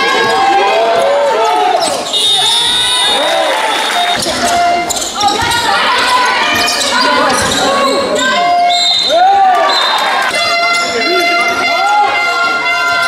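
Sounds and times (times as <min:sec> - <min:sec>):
spectators calling out: 0:00.0 - 0:13.0
sneakers squeaking on court: 0:01.4 - 0:02.9, 0:03.9 - 0:09.1, 0:10.3 - 0:12.0
basketball bouncing: 0:03.9 - 0:08.6.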